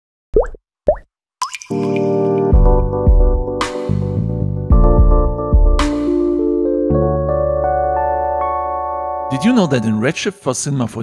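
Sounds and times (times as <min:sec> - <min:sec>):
sustained music chord: 0:06.4 - 0:10.2.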